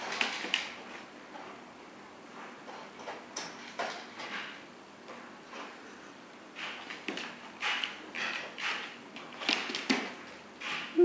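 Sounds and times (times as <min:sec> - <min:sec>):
dog claws clicking on wood floor: 0:06.6 - 0:10.9.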